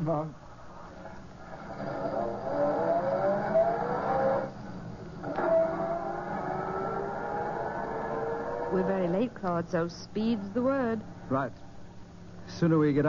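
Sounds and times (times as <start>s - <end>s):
car engine accelerating: 1.4s - 9.4s.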